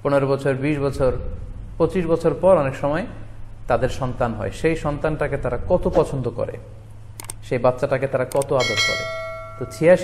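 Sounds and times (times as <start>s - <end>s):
quick clicks: 7.2s - 7.4s, 8.3s - 8.6s
man speaking: 7.5s - 10.0s
bright bell-like ding: 8.6s - 10.0s.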